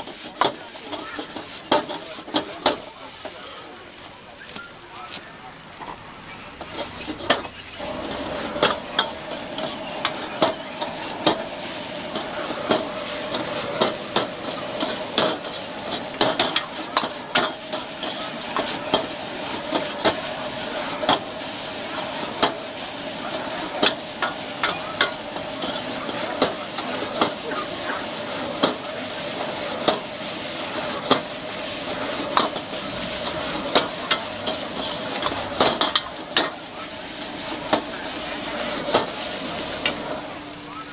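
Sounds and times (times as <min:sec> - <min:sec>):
noodles sizzling in a wok: 0:00.0 - 0:40.9.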